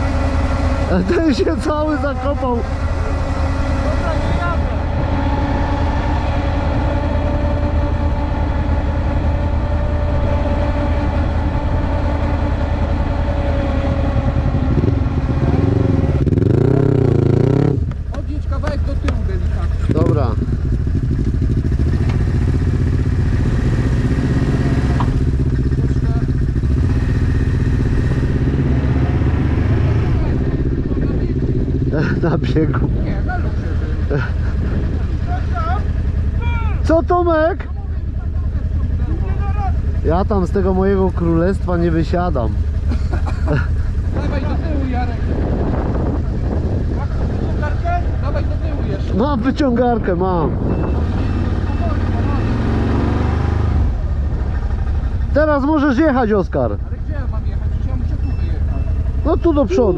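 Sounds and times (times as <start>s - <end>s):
quad bike engine idling: 0.0s - 28.0s, 30.1s - 49.2s, 53.9s - 59.9s.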